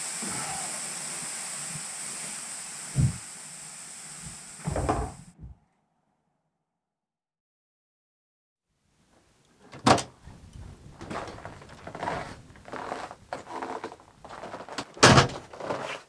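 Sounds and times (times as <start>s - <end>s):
wooden door banging: 9.7s - 10.1s, 15.0s - 15.5s.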